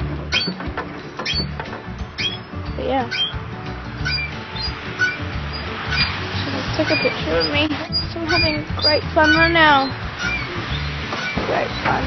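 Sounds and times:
playground ride squeaking: 0.0 - 12.0.

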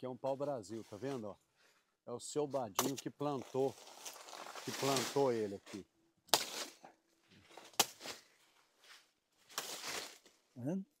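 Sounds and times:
footsteps crunching through leaves: 3.3 - 5.8, 7.4 - 10.4.

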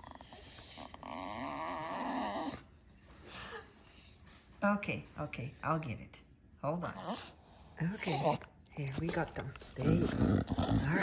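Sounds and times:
dog whining: 0.0 - 2.7.

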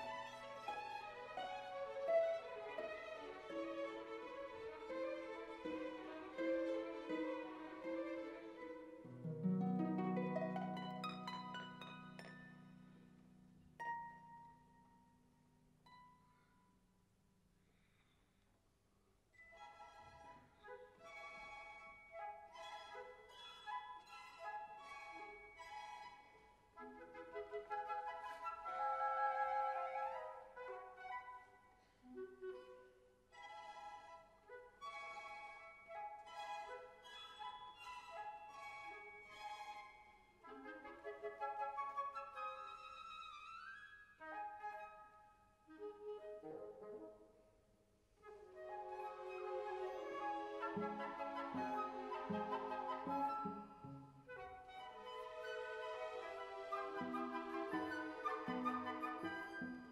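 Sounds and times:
orchestral violins playing softly: 0.0 - 13.2, 19.4 - 41.8, 48.2 - 59.9.

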